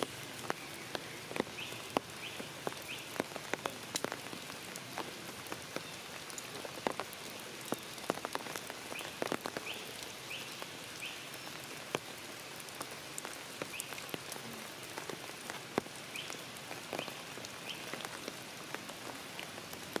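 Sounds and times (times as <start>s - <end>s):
drips striking leaves: 0.0s - 20.0s
steady hiss of rain: 0.0s - 20.0s.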